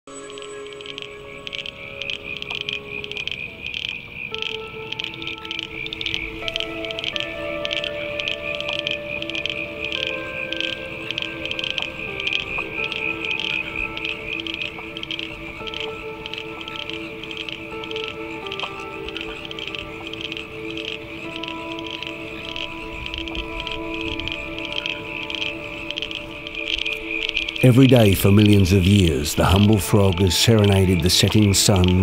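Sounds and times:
music with soft held chords: 0.1 - 32.0
frogs calling in short pulses: 0.2 - 28.0.

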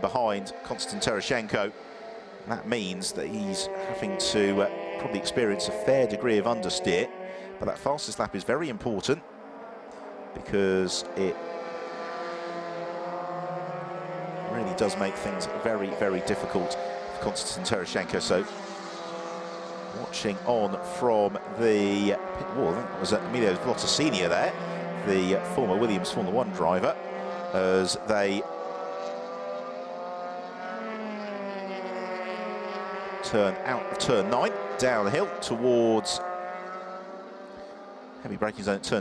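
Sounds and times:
racing car engine at high revs: 0.0 - 39.0.

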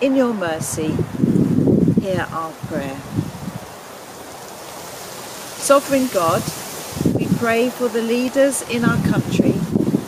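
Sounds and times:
wind gusts buffeting microphone: 0.0 - 10.0
wind rustling through leaves: 0.0 - 10.0.

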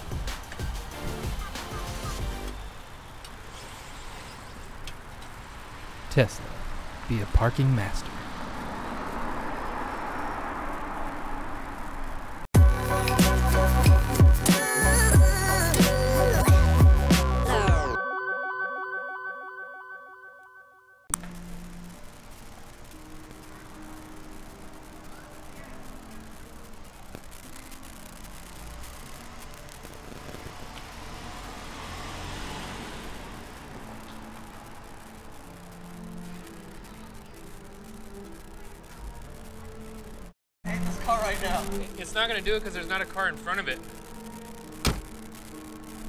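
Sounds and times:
low hum of traffic: 0.0 - 14.2, 21.1 - 46.0
music track notes ringing: 12.6 - 29.8, 33.2 - 46.0.

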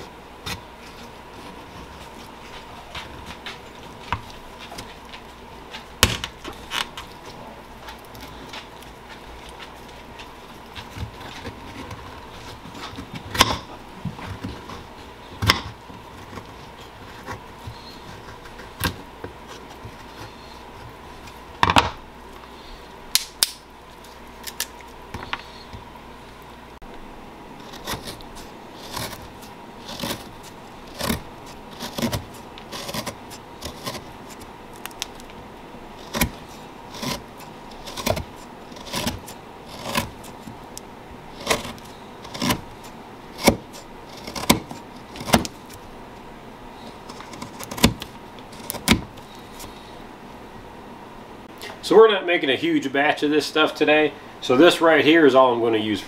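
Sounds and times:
knife shaving root: 0.0 - 21.5, 27.6 - 35.4, 36.0 - 45.9, 46.7 - 49.9.

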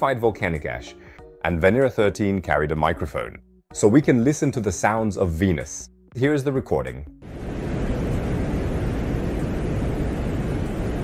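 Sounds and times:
low rumble: 7.2 - 11.0.

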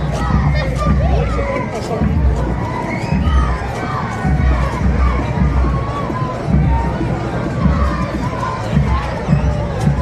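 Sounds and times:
children shouting and cheering: 0.0 - 10.0
crowd hubbub: 0.0 - 10.0.

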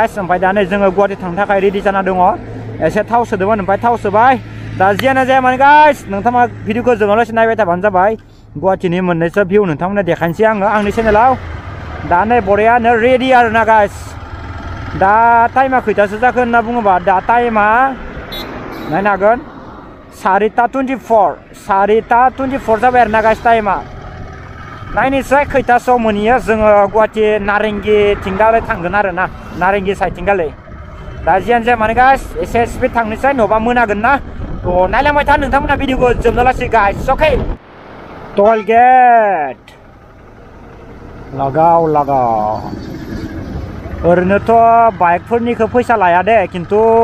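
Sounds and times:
motorcycle engine running: 10.6 - 19.0, 21.7 - 36.4, 39.2 - 47.0
wind on microphone: 33.4 - 38.4
person's voice in drawn-out phrases: 38.4 - 38.9.

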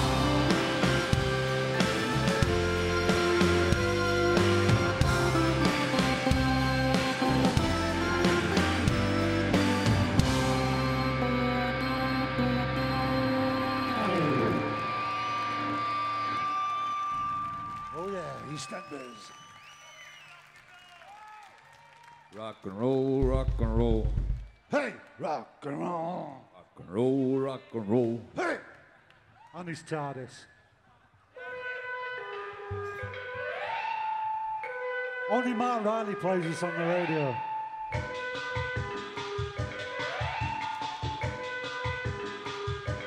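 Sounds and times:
band chord: 0.0 - 16.0
steady high synth tone: 2.8 - 16.4.

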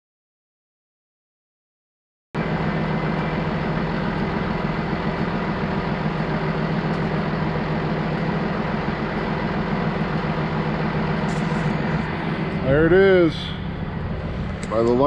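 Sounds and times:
diesel engine idling: 2.4 - 15.0.

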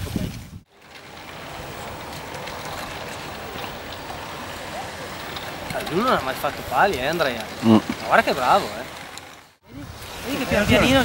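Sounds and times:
outdoor ambience rushing: 0.7 - 11.0.

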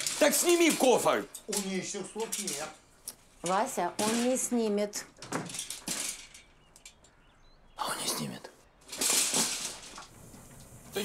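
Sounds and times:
man speaking: 7.8 - 8.6.

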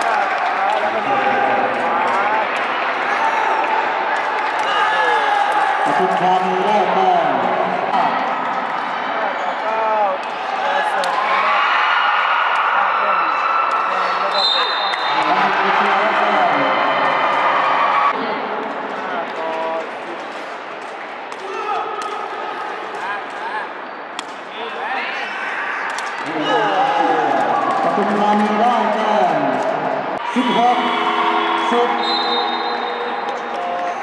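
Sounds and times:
voices of players and spectators: 0.0 - 34.0.

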